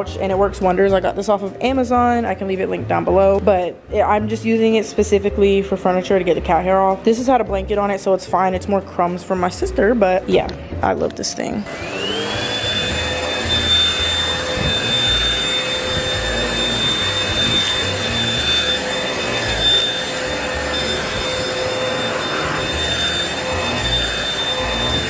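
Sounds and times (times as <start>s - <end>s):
handheld vacuum running: 11.6s - 25.0s.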